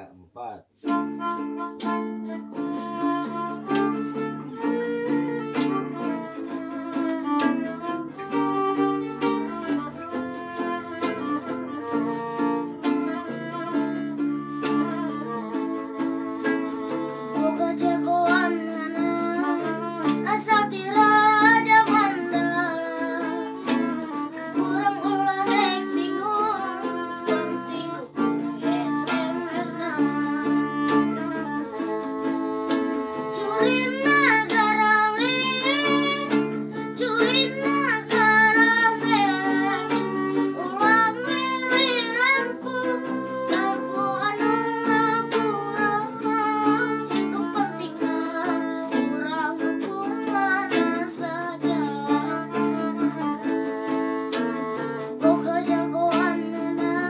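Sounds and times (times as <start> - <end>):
acoustic guitars accompaniment: 0.0 - 57.0
violin melody with vibrato: 0.0 - 57.0.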